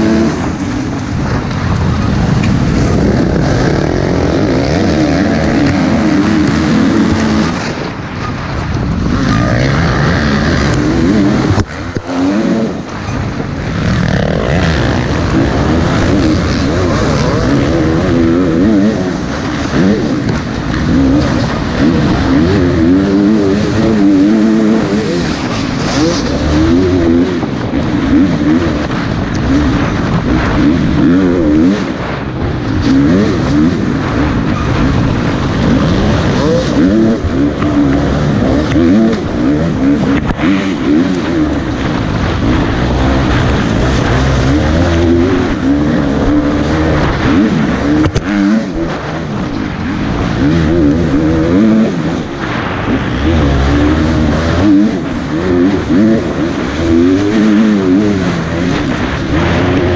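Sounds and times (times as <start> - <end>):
dirt bike engine revving: 0.0 - 59.9.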